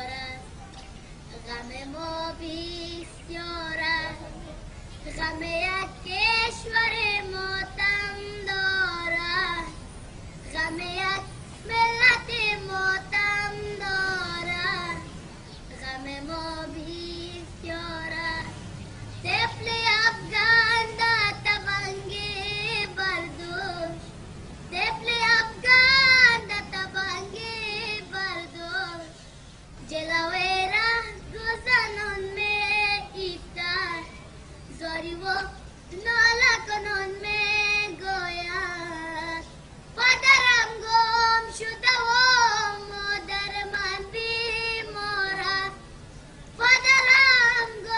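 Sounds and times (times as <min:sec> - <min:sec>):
boy singing: 0:00.0 - 0:00.6, 0:01.3 - 0:47.9.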